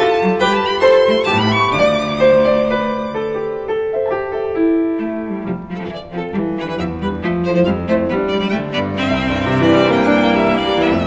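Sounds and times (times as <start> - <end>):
piano trio chamber music: 0.0 - 11.0.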